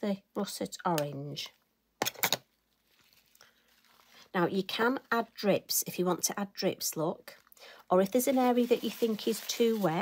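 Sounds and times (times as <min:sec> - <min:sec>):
faint handling noise: 0:02.1 - 0:04.3
paper towel crinkling: 0:02.7 - 0:04.8, 0:07.3 - 0:10.0.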